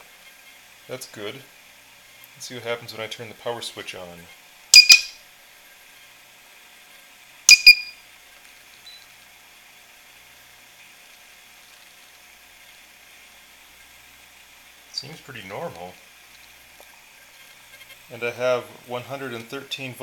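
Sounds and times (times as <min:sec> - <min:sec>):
faint steady hiss: 0:00.0 - 0:20.0
inverter buzzer high beeps: 0:04.8 - 0:05.2, 0:07.5 - 0:08.0.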